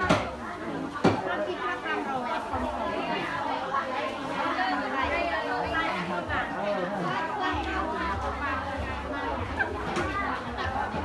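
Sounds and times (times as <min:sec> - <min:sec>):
market chatter: 0:00.0 - 0:11.0.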